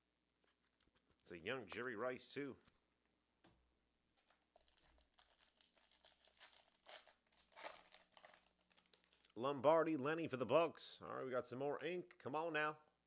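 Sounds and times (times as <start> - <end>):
foil wrapper crinkling and tearing: 4.2 - 9.4.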